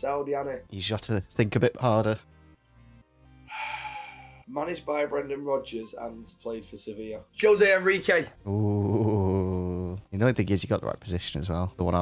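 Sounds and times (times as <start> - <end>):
faint background music: 0.0 - 12.0
man breathing loudly: 3.4 - 4.5.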